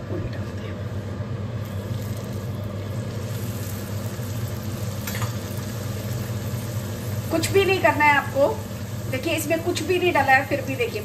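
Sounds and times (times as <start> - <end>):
low mechanical hum: 0.0 - 11.0
bread frying in hot oil: 1.5 - 11.0.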